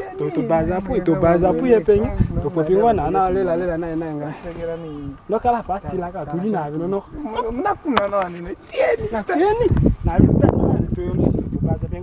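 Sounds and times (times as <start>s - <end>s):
steady high-pitched hiss: 0.0s - 12.0s.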